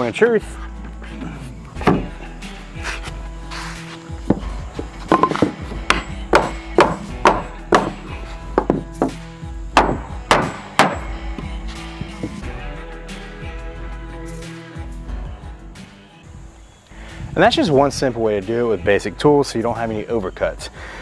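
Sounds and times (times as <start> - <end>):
background music: 0.0 - 21.0
hammer knocking on wood: 5.1 - 9.2, 9.8 - 11.1.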